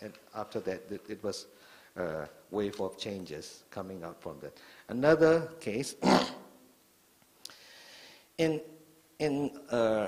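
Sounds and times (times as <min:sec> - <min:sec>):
faint in-breath: 0:01.6 - 0:02.0, 0:04.6 - 0:04.9, 0:07.5 - 0:08.4
man breathing into microphone: 0:07.5 - 0:08.4.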